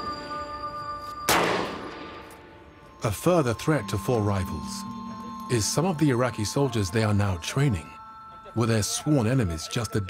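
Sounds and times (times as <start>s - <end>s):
gunshot echoing: 1.3s - 2.5s.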